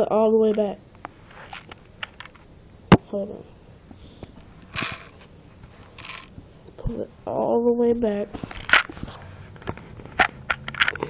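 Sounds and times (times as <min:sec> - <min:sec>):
short rustle: 0:01.1 - 0:02.3.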